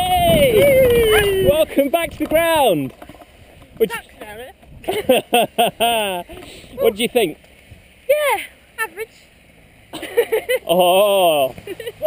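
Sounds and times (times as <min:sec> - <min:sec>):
person crying out: 0:10.7 - 0:11.5.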